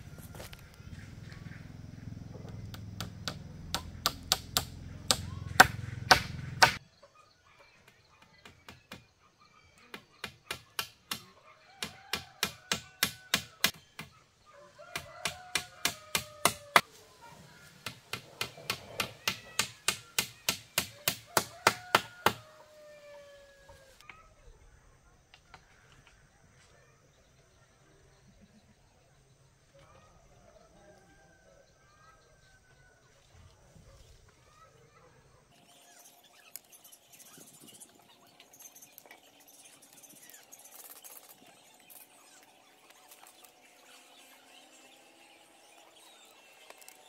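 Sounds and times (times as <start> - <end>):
hammer striking bamboo: 2.7 - 6.8, 10.2 - 14.1, 14.9 - 16.8, 17.8 - 22.4.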